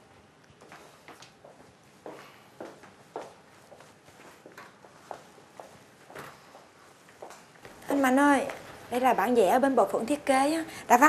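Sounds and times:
footsteps walking: 0:00.5 - 0:09.2.

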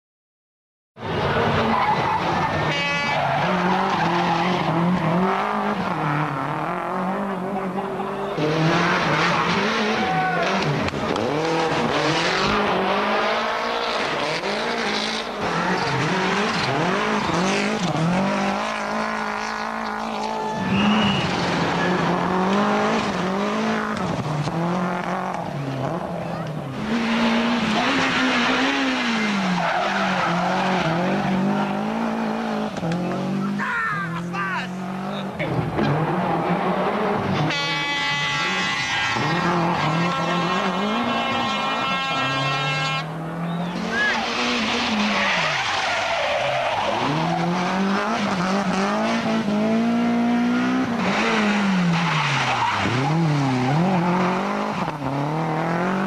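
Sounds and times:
rally car engine revving: 0:01.0 - 0:56.0
tyre squeal: 0:19.8 - 0:22.0, 0:37.7 - 0:47.7.

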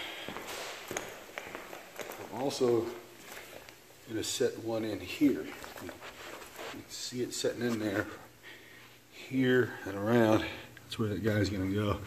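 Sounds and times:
footsteps on laminate floor: 0:00.2 - 0:03.7.

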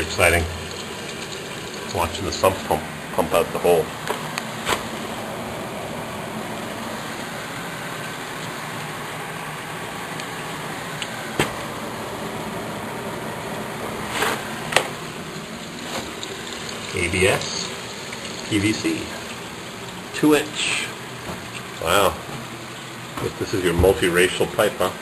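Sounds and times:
sump pump running: 0:00.0 - 0:25.0.

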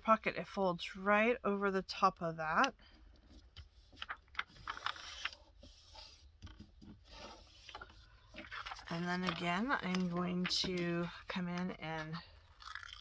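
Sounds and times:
paper rustling and folding: 0:03.3 - 0:12.3.

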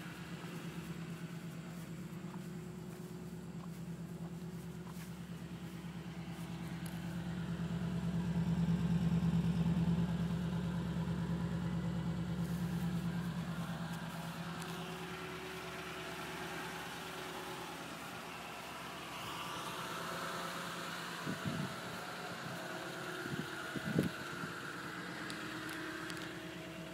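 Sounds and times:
pickup engine idling: 0:00.0 - 0:26.9.

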